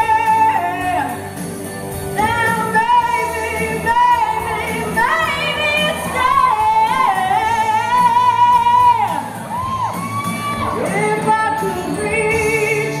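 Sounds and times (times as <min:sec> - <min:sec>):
woman singing with vibrato: 0:00.0 - 0:01.3, 0:02.2 - 0:09.7, 0:10.6 - 0:13.0
pop band playing: 0:00.0 - 0:13.0.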